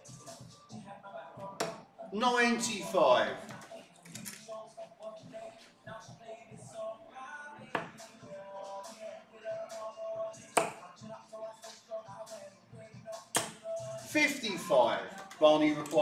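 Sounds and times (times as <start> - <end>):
faint background music: 0.0 - 16.0
darts hitting dartboard: 1.6 - 1.8, 7.8 - 8.0, 10.6 - 10.8, 13.4 - 13.6.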